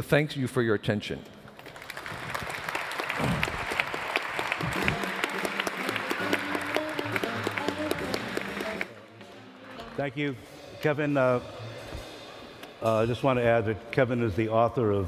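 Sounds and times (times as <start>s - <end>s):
audience applauding: 1.6s - 9.0s.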